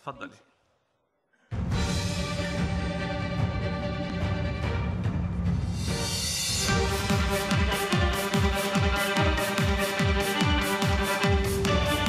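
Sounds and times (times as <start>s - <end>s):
backing track with a beat: 5.9s - 12.0s
violin playing: 6.6s - 12.0s.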